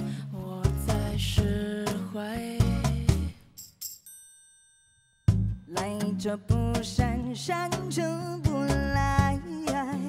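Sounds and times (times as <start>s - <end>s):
bell-like chime: 3.6s - 5.8s
band with drums bass and singing: 5.7s - 10.0s.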